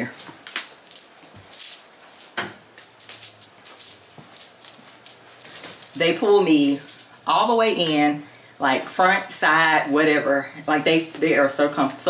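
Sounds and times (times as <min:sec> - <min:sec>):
fabric rustling: 0:00.0 - 0:07.3.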